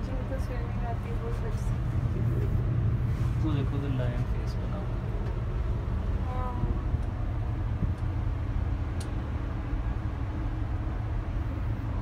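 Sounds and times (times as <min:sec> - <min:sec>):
cable car low rumble: 0:00.0 - 0:12.0.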